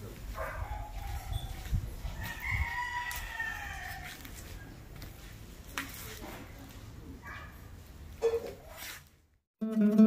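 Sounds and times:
rooster crowing: 2.2s - 4.2s.

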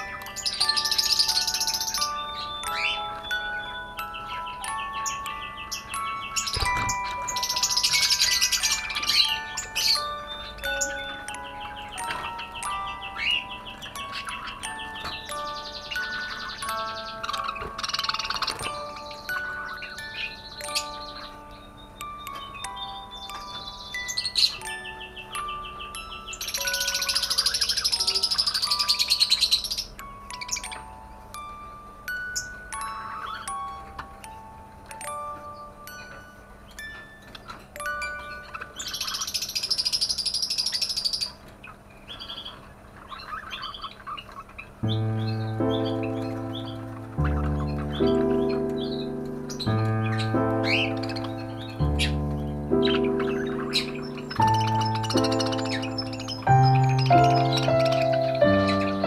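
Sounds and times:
budgerigars chattering and warbling: 0.0s - 30.9s, 32.3s - 34.1s, 35.4s - 59.0s
background music of held notes: 0.0s - 41.5s, 42.1s - 59.0s.

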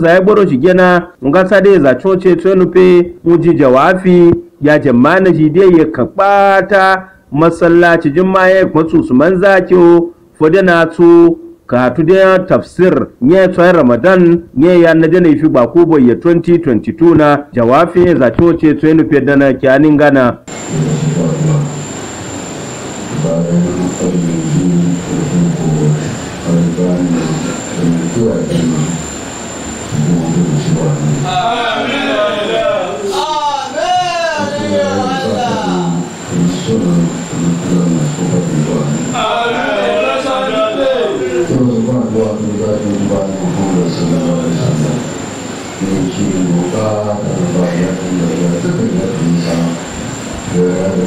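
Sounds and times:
man praying through loudspeakers: 0.0s - 21.9s, 23.1s - 29.1s, 29.9s - 51.0s
high-pitched electronic whine: 20.5s - 51.0s
man chanting over loudspeaker: 23.1s - 29.0s, 29.9s - 45.2s.

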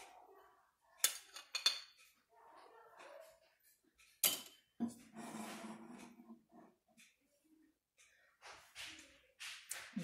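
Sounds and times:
utensils and dishes clinking: 1.0s - 2.3s, 4.2s - 6.3s
knife scraping plate: 4.9s - 6.4s.

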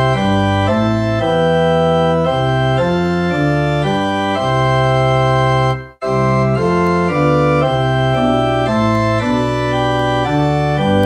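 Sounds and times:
church organ playing hymn: 0.0s - 11.0s.

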